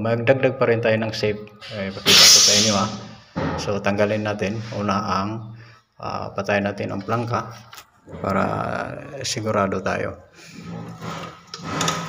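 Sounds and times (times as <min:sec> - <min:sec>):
low voice: 0:08.1 - 0:09.3.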